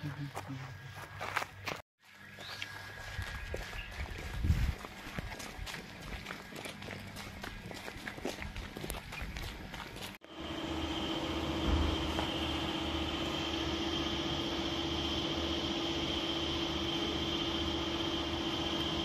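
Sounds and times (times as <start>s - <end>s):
machine hum with high whine: 2.1s - 19.0s.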